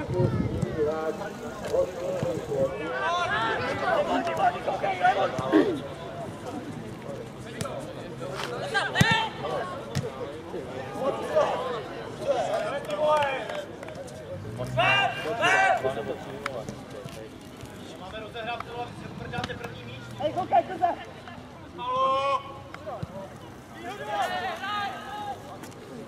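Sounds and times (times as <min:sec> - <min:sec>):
players shouting calls: 0:00.4 - 0:06.4, 0:08.6 - 0:09.9, 0:14.7 - 0:16.5, 0:19.5 - 0:25.6.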